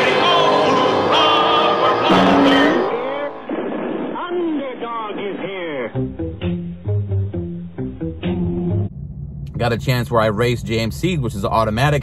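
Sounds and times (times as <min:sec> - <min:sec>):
background music: 0:00.0 - 0:03.5, 0:05.9 - 0:08.9
race car engine accelerating: 0:00.0 - 0:03.5.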